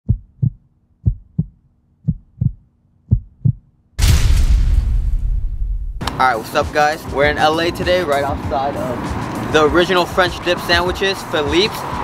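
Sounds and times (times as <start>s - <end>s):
heartbeat thumps: 0.0s - 3.7s.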